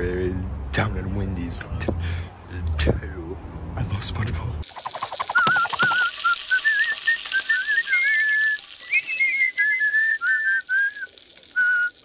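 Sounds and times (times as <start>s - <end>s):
cartoon character whistling tune: 5.3s - 12.0s.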